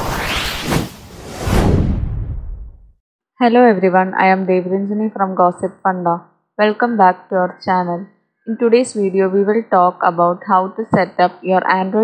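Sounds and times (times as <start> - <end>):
deep rushing whoosh: 0.0 - 2.8.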